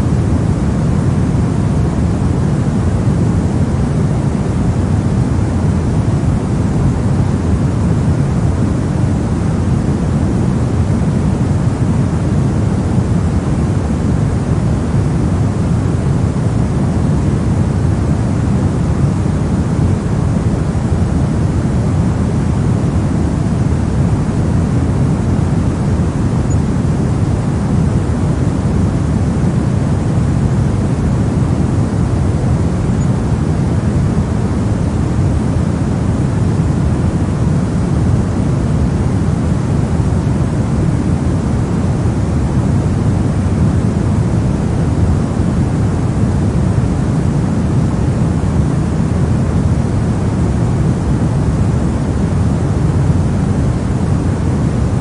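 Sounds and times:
steady pink noise: 0:00.0 - 0:55.0.

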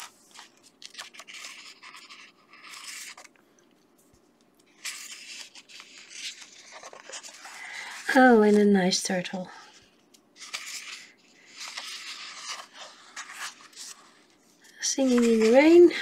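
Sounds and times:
paper pages rustling: 0:00.0 - 0:03.3, 0:03.9 - 0:08.8, 0:09.8 - 0:16.0.

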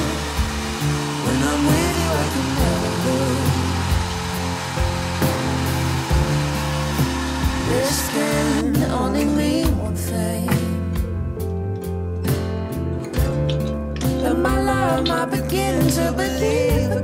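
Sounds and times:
hair dryer blowing: 0:00.0 - 0:08.8
background pop music: 0:00.0 - 0:17.0.

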